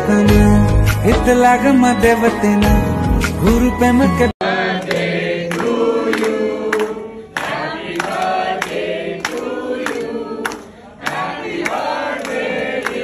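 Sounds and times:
group of people singing: 3.6 - 13.0
hand claps: 4.7 - 13.0.

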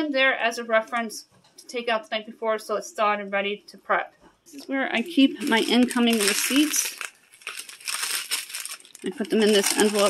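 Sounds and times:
paper and plastic rustling: 5.1 - 10.0.

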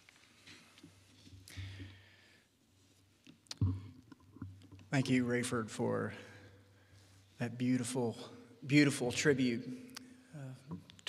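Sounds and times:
man's voice: 5.0 - 6.2, 7.4 - 9.7.

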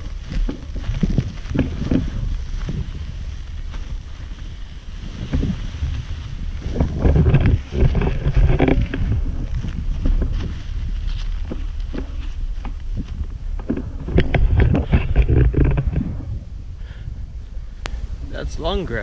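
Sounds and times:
skate wheels swishing through grass: 0.0 - 16.4
wind rumble on microphone: 0.0 - 19.0.

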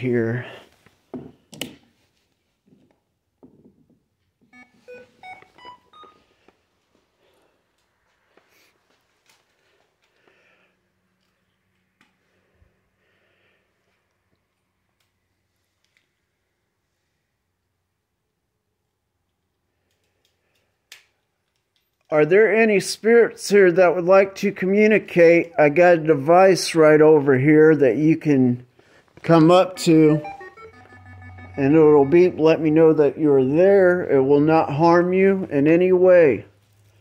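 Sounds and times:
electronic beeps rising in pitch: 29.7 - 33.2.

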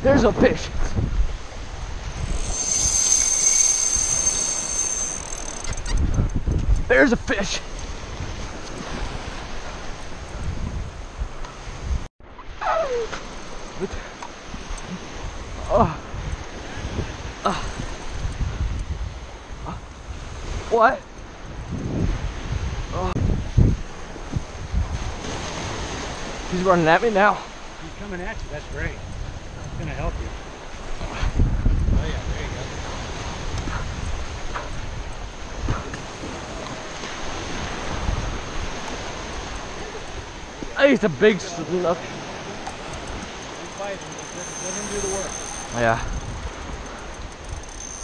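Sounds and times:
wind buffeting microphone: 0.0 - 12.1, 14.4 - 26.6, 27.6 - 40.8, 42.0 - 48.0
fishing reel drag whining: 2.0 - 6.4, 42.6 - 48.0
small waves breaking: 7.6 - 10.3, 23.9 - 28.0, 35.4 - 45.2.

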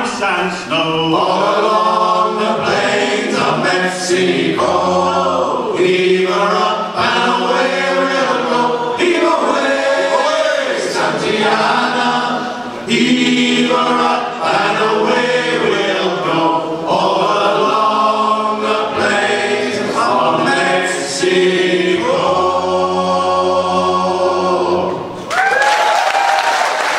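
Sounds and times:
male choir singing in harmony: 0.0 - 25.2
audience applause and cheering: 25.2 - 26.9.

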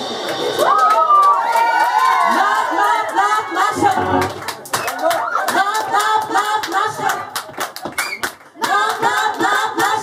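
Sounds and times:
group singing unaccompanied: 2.3 - 4.5, 5.5 - 7.4, 8.6 - 10.0
hand clapping: 4.3 - 10.0.

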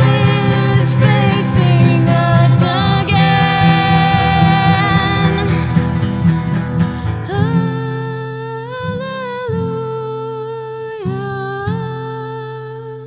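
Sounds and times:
woman singing: 0.0 - 5.9, 7.1 - 13.0
acoustic guitar chords: 0.0 - 13.0.

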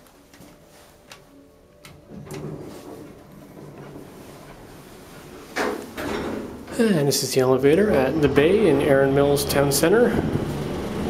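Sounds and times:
loud elevator noise: 1.7 - 11.0
elevator door clicks: 1.8 - 6.8
elevator doors sliding shut: 1.8 - 11.0.

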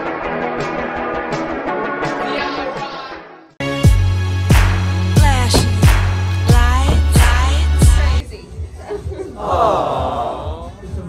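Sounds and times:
hip-hop music: 0.1 - 8.2
people talking in a room: 8.2 - 11.0.

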